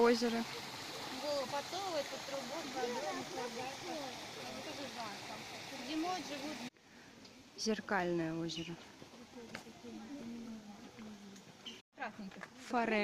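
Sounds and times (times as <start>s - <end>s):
people chattering: 0.0s - 6.7s.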